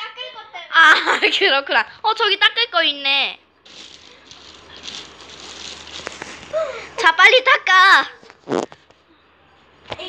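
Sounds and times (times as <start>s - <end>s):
plastic bag rustling: 3.6s - 7.1s.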